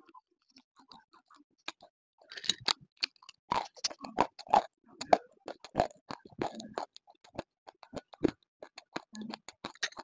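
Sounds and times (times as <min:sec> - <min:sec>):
mouth crunching and chewing: 0:00.4 - 0:10.0.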